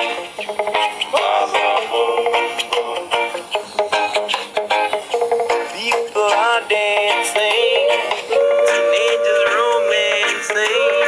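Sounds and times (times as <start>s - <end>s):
person singing with sliding notes: 0.0s - 11.0s
rocksteady band backing: 0.0s - 11.0s.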